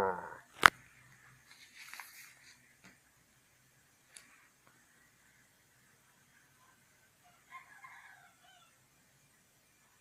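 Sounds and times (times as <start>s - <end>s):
faint distant animal call: 0.0s - 0.5s, 6.1s - 10.0s.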